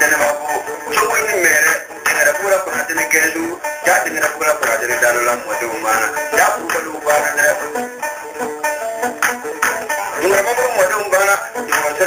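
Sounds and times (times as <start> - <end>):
man singing: 0.0 - 8.0, 9.8 - 12.0
instrumental accompaniment: 0.0 - 12.0.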